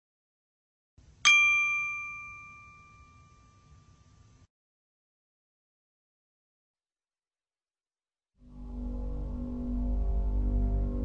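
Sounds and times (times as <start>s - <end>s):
bell-like chime: 1.3s - 4.4s.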